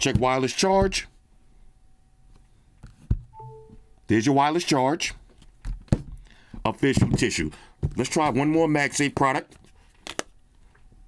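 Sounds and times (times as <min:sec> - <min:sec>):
phone charging chime: 0:03.4 - 0:03.9.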